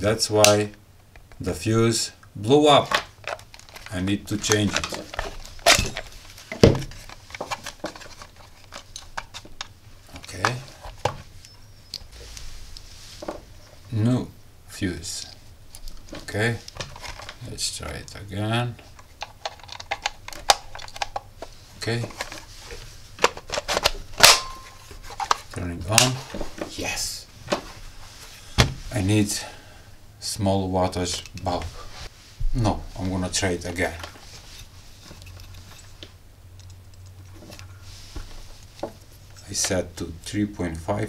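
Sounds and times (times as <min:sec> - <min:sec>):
brief steady tone: 0:11.4 - 0:12.1.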